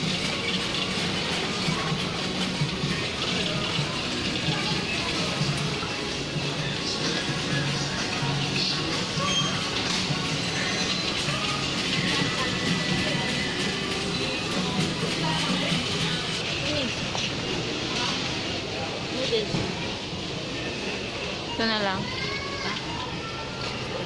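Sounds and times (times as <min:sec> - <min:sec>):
music playing: 0:00.0 - 0:17.7
indistinct chatter of voices: 0:00.0 - 0:24.0.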